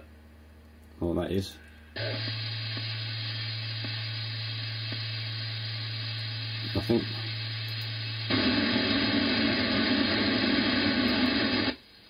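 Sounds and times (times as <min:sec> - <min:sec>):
radio static hiss: 0:01.9 - 0:11.8.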